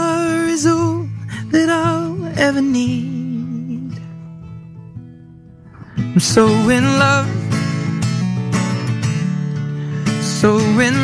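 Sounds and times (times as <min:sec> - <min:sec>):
acoustic guitar chords: 0:00.0 - 0:11.0.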